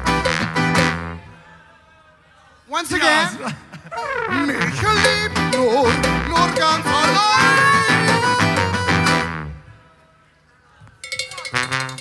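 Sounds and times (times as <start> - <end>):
accordion: 0.0 - 1.2, 4.0 - 9.6
trombone: 0.0 - 1.2, 4.0 - 9.6, 11.4 - 12.0
guitars: 0.0 - 1.3, 4.0 - 9.6.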